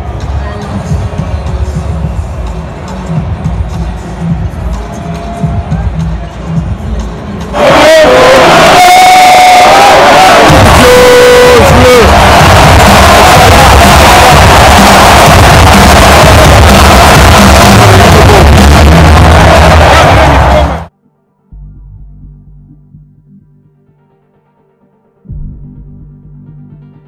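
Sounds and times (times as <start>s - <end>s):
loud arena music: 0.0s - 20.9s
crowd roaring: 7.5s - 20.9s.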